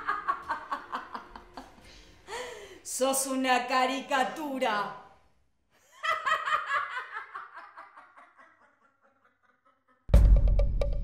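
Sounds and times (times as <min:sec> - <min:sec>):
woman laughing loudly: 0:00.0 - 0:02.4, 0:05.8 - 0:10.1.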